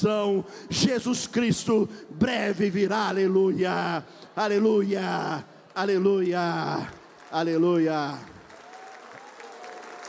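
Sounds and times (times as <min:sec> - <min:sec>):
person speaking a prayer: 0:00.0 - 0:08.4
congregation applauding: 0:05.7 - 0:10.0.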